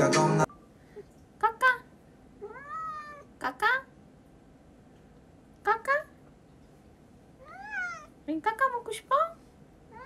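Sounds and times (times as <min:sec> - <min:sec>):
cat meowing: 0:02.4 - 0:03.3, 0:07.4 - 0:08.2.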